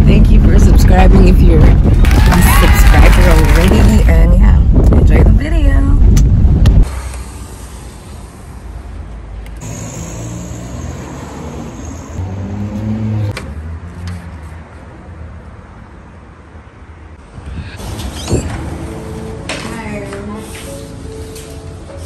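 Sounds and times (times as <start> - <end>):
road traffic hum: 0.0 - 22.0
car engine: 6.1 - 14.4.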